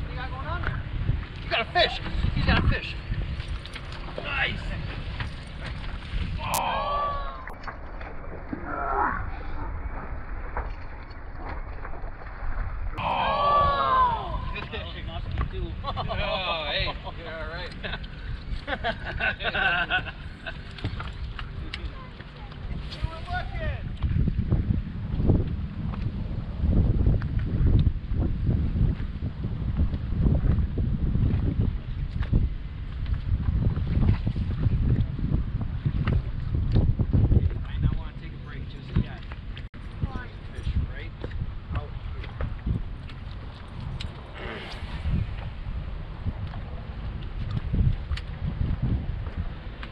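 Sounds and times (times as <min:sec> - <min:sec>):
boat noise: 0:00.0 - 0:49.9
wind rumble: 0:00.0 - 0:49.9.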